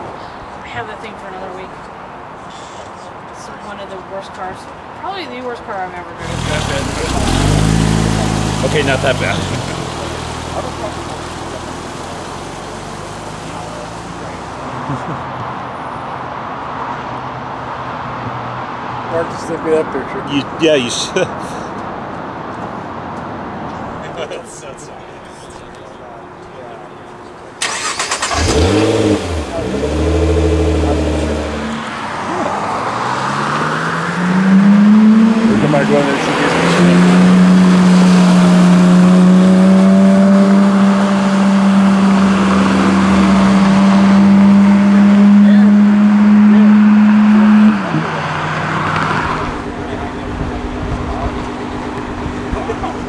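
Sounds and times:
car engine revving: 0:06.1 - 0:15.3, 0:27.6 - 0:53.0.

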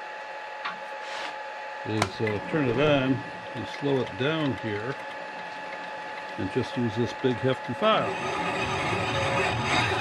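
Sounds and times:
high-pitched machinery whine: 0:01.6 - 0:10.0.

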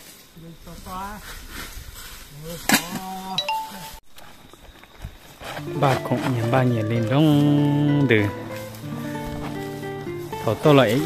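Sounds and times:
man speaking: 0:05.8 - 0:08.4, 0:10.4 - 0:11.0.

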